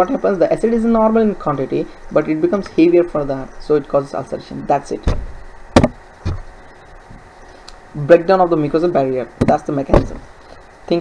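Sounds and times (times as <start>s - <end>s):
sharp knocks: 5.0s - 6.5s.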